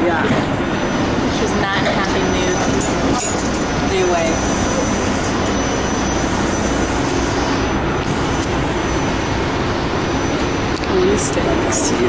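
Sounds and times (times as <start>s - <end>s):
train running noise: 0.0s - 12.0s.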